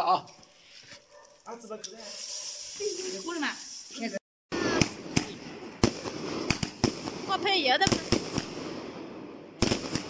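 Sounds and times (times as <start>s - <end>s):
hiss of spraying sparks: 1.9s - 4.2s
firework bangs: 4.5s - 10.0s.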